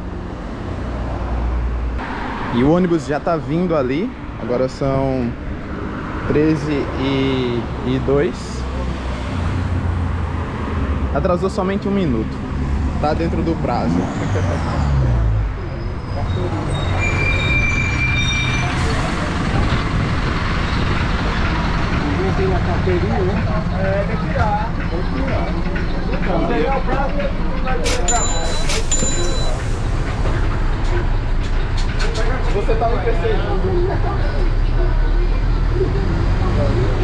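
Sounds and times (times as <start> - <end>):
bus engine drone: 0.0 - 37.0.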